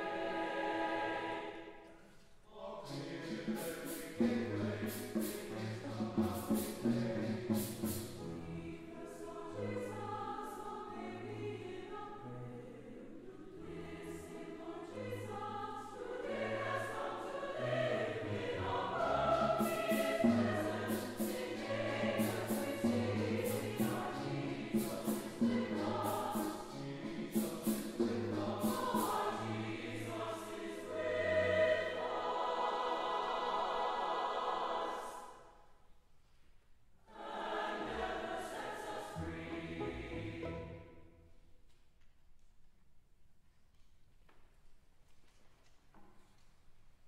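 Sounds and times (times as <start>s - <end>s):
mixed choir singing in harmony: 0.0s - 35.6s, 37.0s - 41.2s
strings accompanying: 2.9s - 35.0s, 37.2s - 41.2s.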